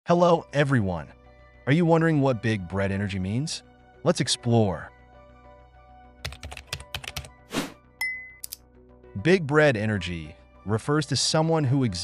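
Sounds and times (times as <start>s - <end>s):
faint background music: 0.1s - 12.0s.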